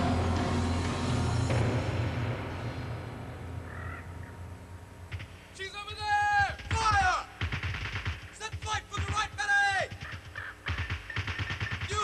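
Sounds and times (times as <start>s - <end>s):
repeated low thuds: 6.3s - 12.0s.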